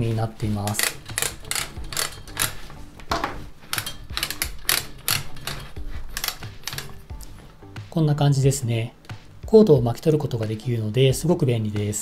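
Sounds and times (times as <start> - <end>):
cord reel clicking: 0.0 - 7.4.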